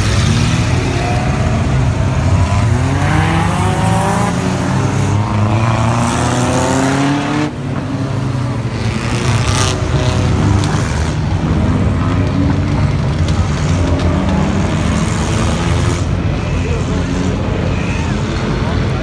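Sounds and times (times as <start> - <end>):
racing car engines accelerating: 0.0 - 19.0.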